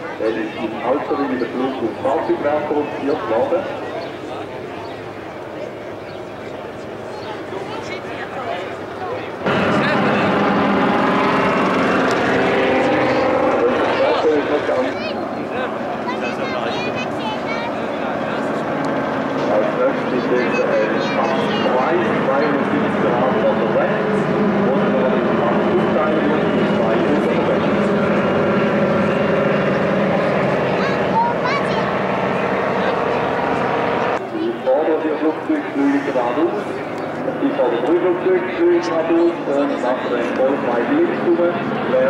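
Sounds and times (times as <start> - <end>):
propeller aircraft droning overhead: 0.0 - 42.0.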